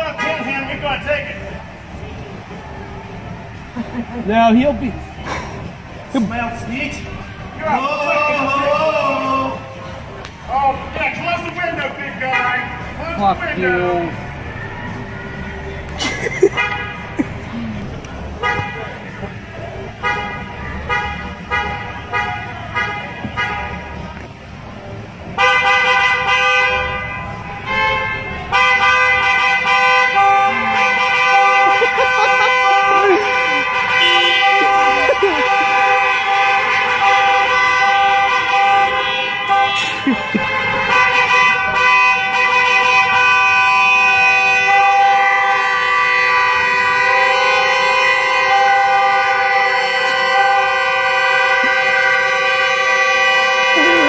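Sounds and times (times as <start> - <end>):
car horn blaring: 0.0 - 1.6, 10.9 - 14.3, 16.4 - 17.5, 18.3 - 24.0, 25.2 - 54.0
people shouting: 30.4 - 36.7.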